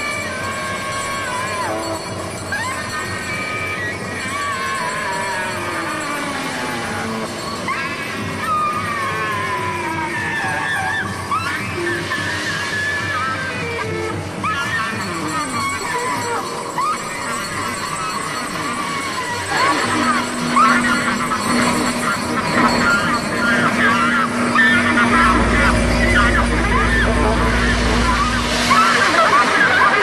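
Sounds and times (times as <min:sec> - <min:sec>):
crowd voices: 0:13.6 - 0:30.0
steady held note: 0:18.8 - 0:30.0
deep bass: 0:25.0 - 0:28.8.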